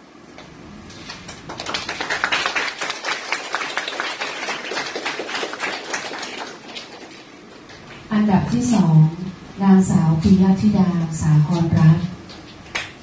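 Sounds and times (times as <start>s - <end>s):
audience applauding: 1.0s - 7.6s.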